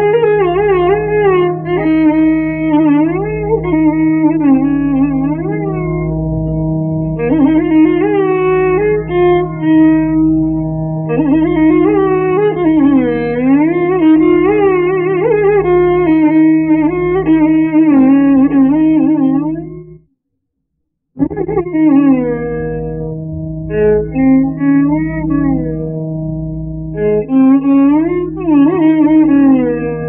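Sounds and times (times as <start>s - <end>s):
violin playing a slow melody: 0.0s - 19.9s, 21.2s - 30.0s
steady drone: 22.4s - 26.9s.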